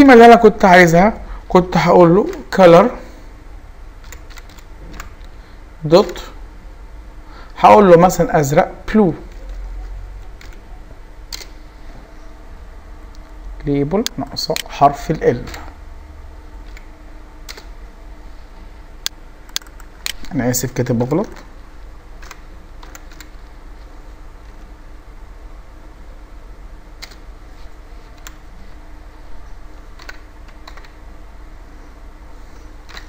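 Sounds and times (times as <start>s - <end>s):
low steady hum: 0.0s - 33.0s
computer keyboard keystrokes: 4.0s - 5.3s, 10.2s - 10.6s, 11.3s - 11.5s, 16.6s - 17.7s, 19.0s - 20.3s, 22.2s - 23.4s, 27.0s - 27.3s, 28.2s - 28.4s, 30.0s - 31.0s.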